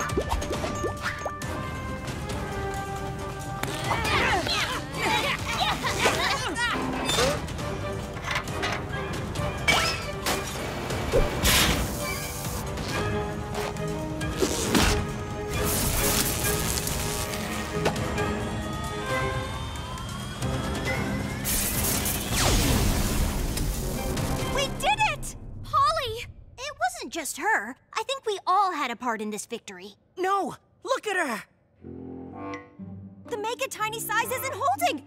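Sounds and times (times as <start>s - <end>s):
background music: 0.0s - 26.2s, 31.1s - 35.0s
crackling electric sparks: 15.5s - 17.8s, 21.4s - 24.2s.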